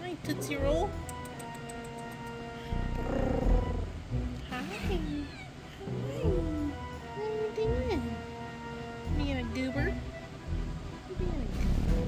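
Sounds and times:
woman speaking softly: 0.0s - 1.0s, 4.5s - 8.2s, 9.1s - 10.0s, 11.0s - 11.6s
background music: 0.0s - 12.0s
kitten meowing: 4.8s - 5.6s.

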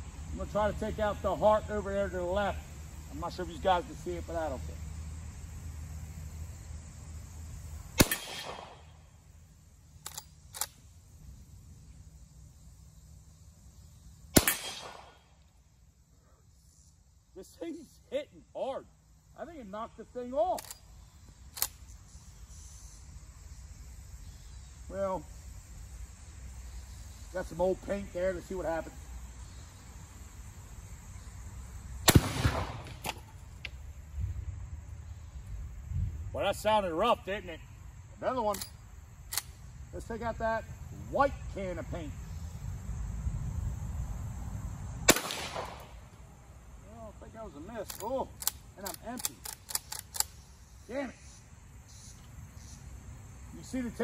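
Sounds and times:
rifle shots with echo: 8.0s - 9.0s, 14.4s - 15.2s, 32.1s - 33.2s, 45.1s - 46.0s
rifle lever clicks: 10.0s - 10.8s, 20.6s - 20.8s, 47.8s - 50.3s.

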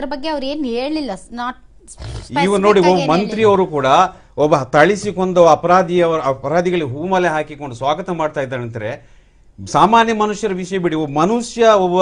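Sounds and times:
person speaking: 1.8s - 5.6s
person talking forcefully: 2.1s - 4.1s.

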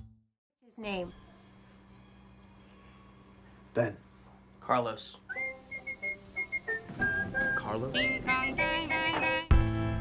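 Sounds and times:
soft music: 5.2s - 9.7s
person whistling tune: 5.3s - 9.5s.

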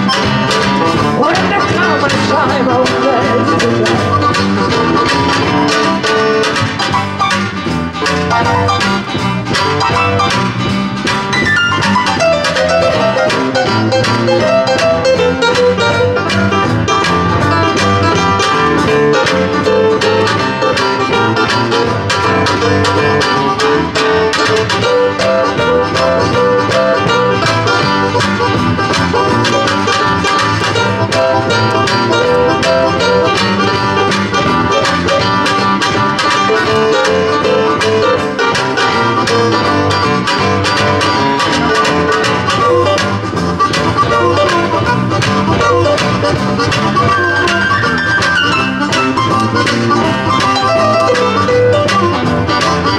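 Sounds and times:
acoustic guitar: 0.0s - 52.9s
electric bass guitar: 0.0s - 52.9s
harmonica lead: 0.0s - 52.9s
keyboard: 0.0s - 52.9s.

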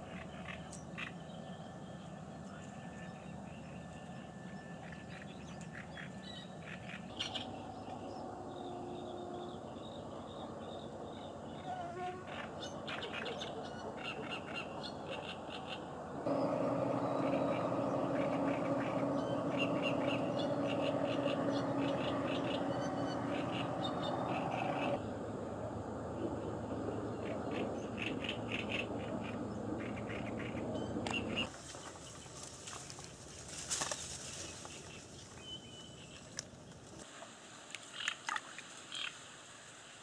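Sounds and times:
small birds chirping: 4.7s - 25.3s, 26.0s - 32.4s
steady low hum: 7.1s - 31.5s.

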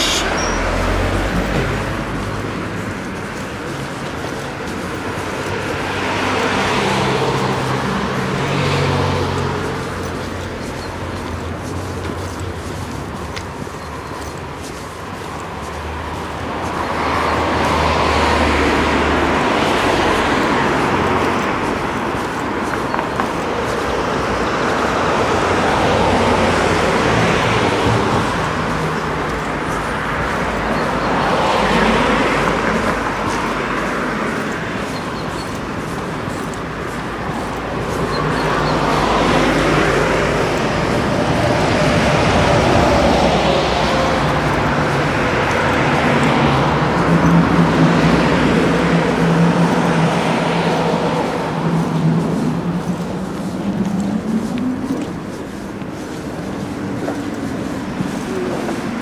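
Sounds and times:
bus passing: 0.0s - 59.0s
cars passing: 0.0s - 59.0s.

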